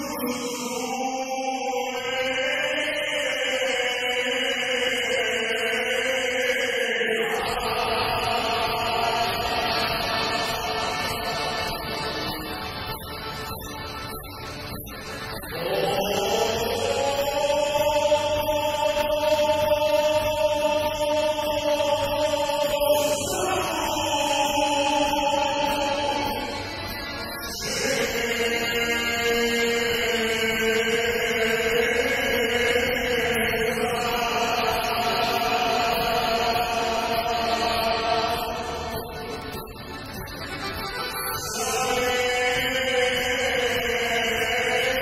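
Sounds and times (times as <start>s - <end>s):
man singing long wavering notes: 0.0s - 40.2s.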